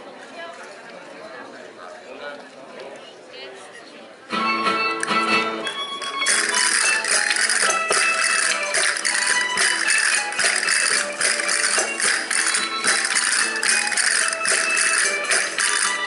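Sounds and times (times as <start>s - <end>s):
folk dance melody instruments: 4.3s - 16.0s
shaken percussion: 6.0s - 16.0s.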